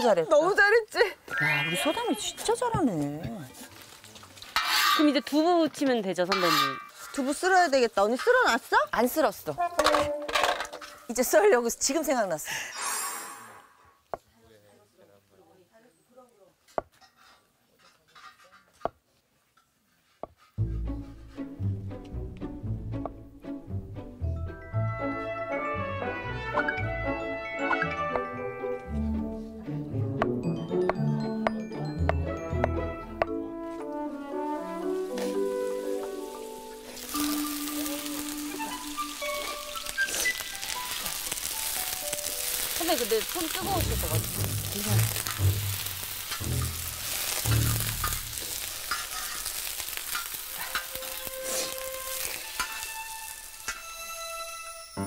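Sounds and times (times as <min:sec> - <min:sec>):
string music: 0:00.0 - 0:11.9, 0:20.6 - 0:48.7, 0:50.9 - 0:55.0
tofu sizzling in a pan: 0:34.8 - 0:54.6.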